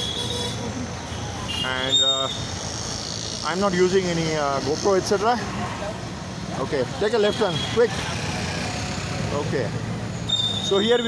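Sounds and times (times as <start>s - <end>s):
street traffic: 0.0s - 11.0s.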